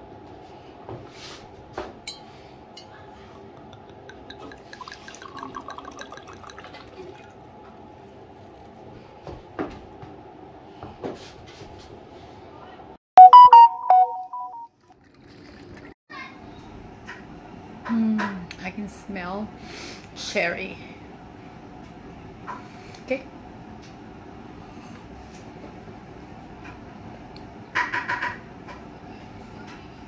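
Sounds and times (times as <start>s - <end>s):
wine pouring into a glass: 3.6s - 7.5s.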